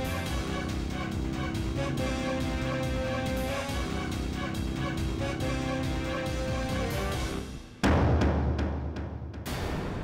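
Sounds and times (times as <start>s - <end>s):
drama score with held notes: 0.0s - 7.9s.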